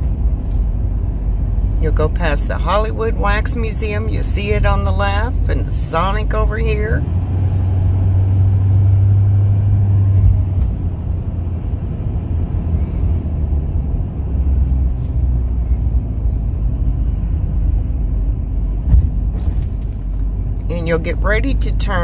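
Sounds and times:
vehicle road and engine rumble: 0:00.0 - 0:22.0.

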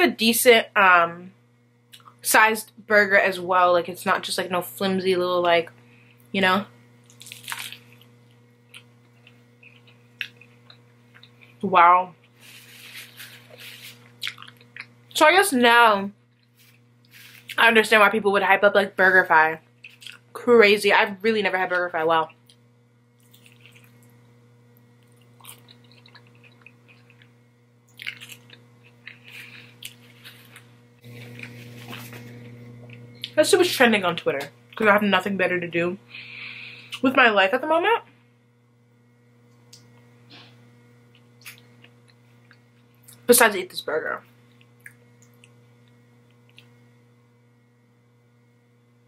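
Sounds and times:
steady low hum: 0:00.0 - 0:49.0
wet chewing: 0:23.2 - 0:24.1, 0:25.0 - 0:27.3, 0:27.9 - 0:32.2.

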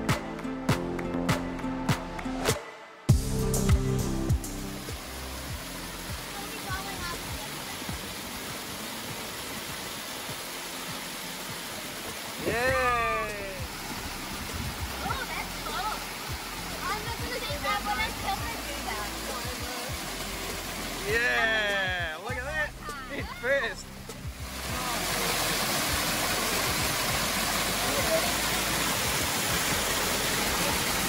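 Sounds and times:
water pouring over rock: 0:04.8 - 0:22.0, 0:24.4 - 0:31.0
voices: 0:16.7 - 0:20.0.

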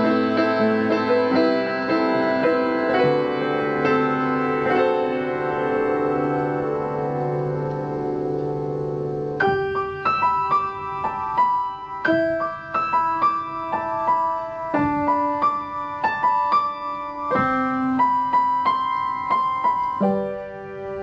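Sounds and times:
piano music: 0:00.0 - 0:21.0.

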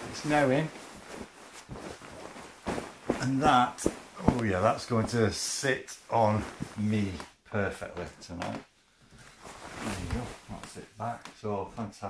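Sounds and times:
duvet rustling: 0:00.0 - 0:08.3, 0:08.9 - 0:12.0.

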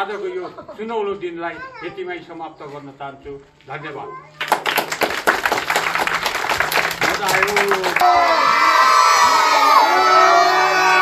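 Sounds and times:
children shouting and cheering: 0:04.2 - 0:04.9, 0:06.8 - 0:11.0.

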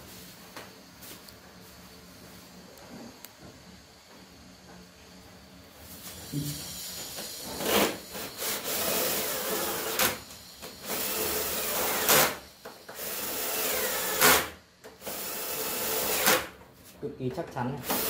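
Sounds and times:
cordless drill running: 0:06.6 - 0:16.5.

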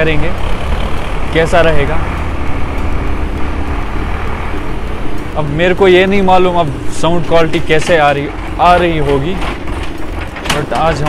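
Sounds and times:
scooter engine running: 0:00.0 - 0:11.0.

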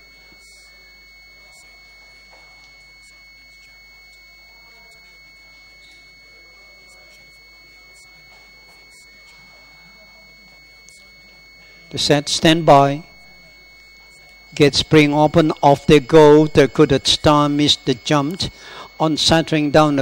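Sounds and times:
high-pitched electrical whine: 0:00.0 - 0:20.0
low mains hum: 0:00.0 - 0:20.0.

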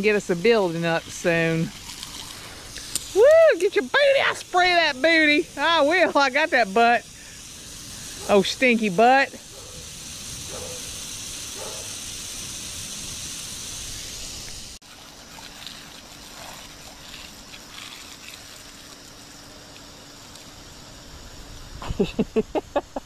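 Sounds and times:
garden hose spraying water: 0:00.0 - 0:23.0.

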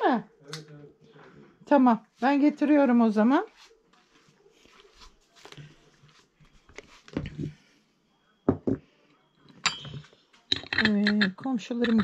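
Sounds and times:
china clinking on table: 0:09.5 - 0:12.0.

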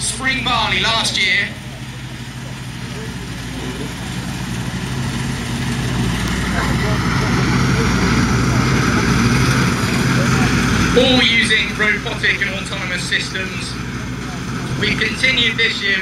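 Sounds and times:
combine harvester running: 0:00.0 - 0:16.0.

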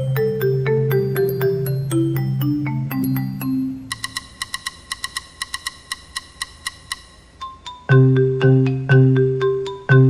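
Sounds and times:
small percussion tapping clicks: 0:02.9 - 0:10.0.

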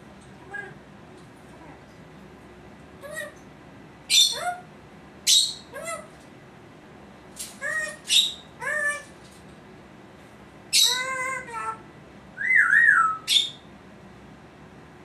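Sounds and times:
parrot calls: 0:03.0 - 0:03.4, 0:04.1 - 0:06.1, 0:07.6 - 0:09.1, 0:10.7 - 0:11.8, 0:12.4 - 0:13.7.

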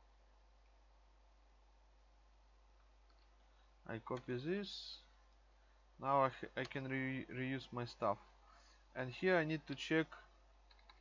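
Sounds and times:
computer mouse click: 0:03.1 - 0:03.3, 0:10.7 - 0:11.0
man speaking: 0:03.9 - 0:05.1, 0:06.0 - 0:08.3, 0:08.9 - 0:10.3.

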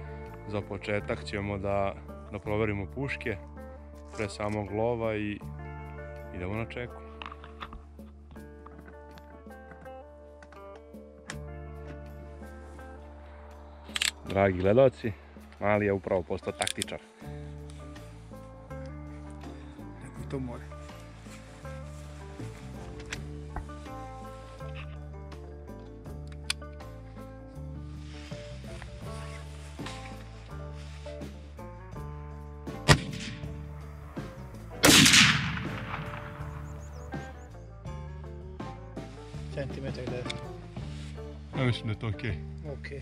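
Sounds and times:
background music with beat: 0:00.0 - 0:43.0
sharp crack: 0:32.7 - 0:37.3
rifle shot: 0:32.8 - 0:33.6, 0:34.8 - 0:36.8.

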